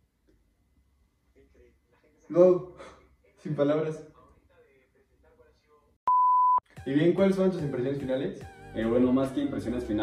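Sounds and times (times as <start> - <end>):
high-pitched censor beep: 6.1 - 6.6.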